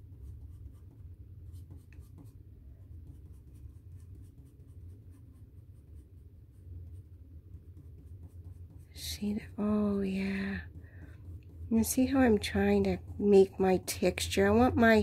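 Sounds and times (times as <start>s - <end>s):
pencil scratching on paper: 0.0s - 15.0s.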